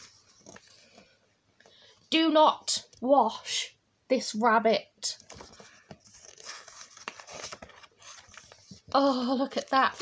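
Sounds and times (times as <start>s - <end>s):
book page turning: 0.0s - 1.1s, 5.2s - 9.0s.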